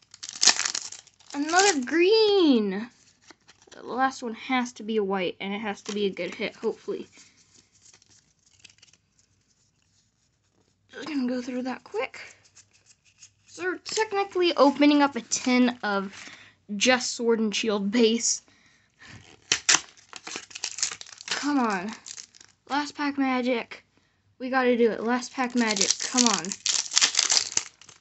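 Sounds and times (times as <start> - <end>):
foil pack crinkling: 0.0 - 2.0, 5.8 - 9.5, 12.2 - 14.4, 19.0 - 22.7, 25.0 - 28.0.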